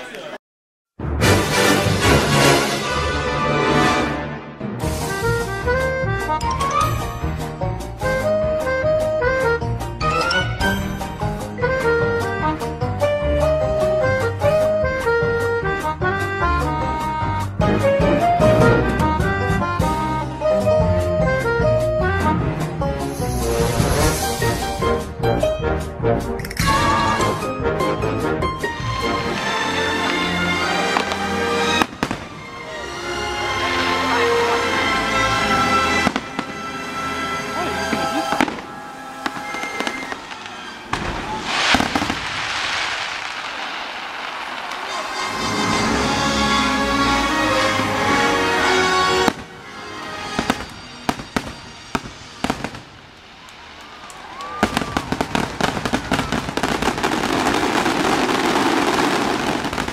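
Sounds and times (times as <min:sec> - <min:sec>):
music: 0:01.0 - 0:42.1, 0:45.0 - 0:53.0, 0:54.6 - 0:59.9
fireworks shells bursting: 0:35.4 - 0:46.6, 0:49.0 - 0:59.9.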